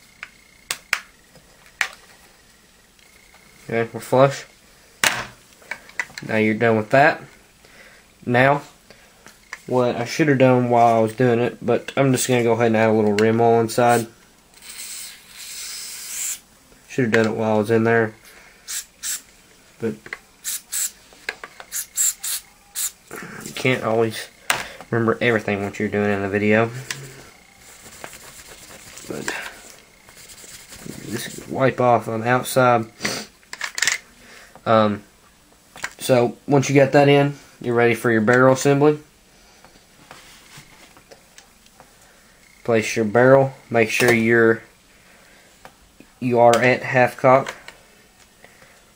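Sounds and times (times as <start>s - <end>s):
aerosol can spraying: 14.6s - 16.4s, 18.7s - 19.2s, 20.4s - 21.0s, 21.7s - 23.0s, 27.0s - 29.3s, 30.1s - 31.5s.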